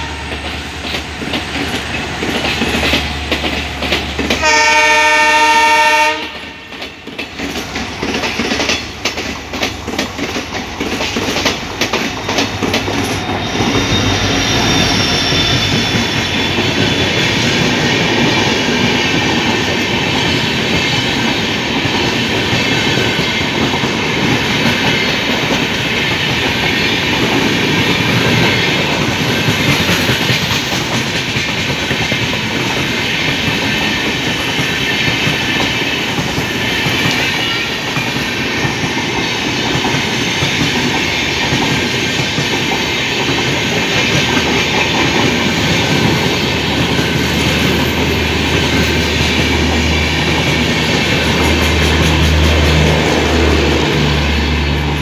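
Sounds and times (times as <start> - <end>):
train wheels rushing on rail: 0.0 - 55.0.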